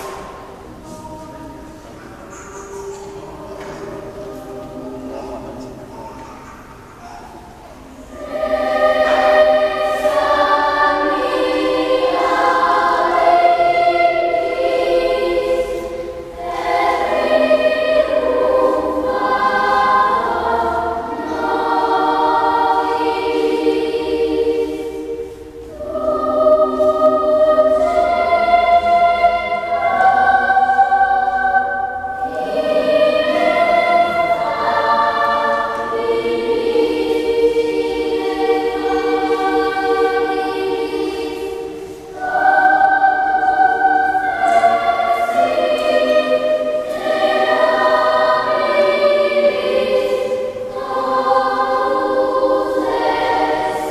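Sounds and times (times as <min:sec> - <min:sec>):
children's choir singing: 0:00.0 - 0:53.9.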